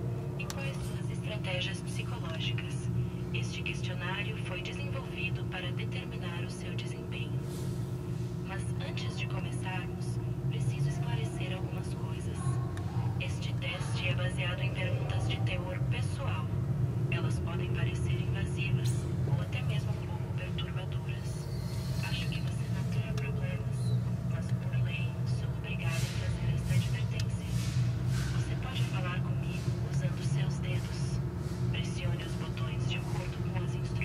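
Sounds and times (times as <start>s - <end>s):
steady low hum: 0.0s - 34.0s
indistinct voices talking: 8.4s - 34.0s.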